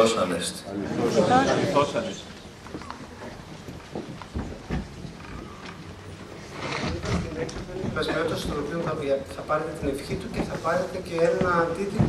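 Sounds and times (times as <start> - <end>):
faint room noise: 0.0 - 12.0
microphone handling thuds: 11.2 - 12.0.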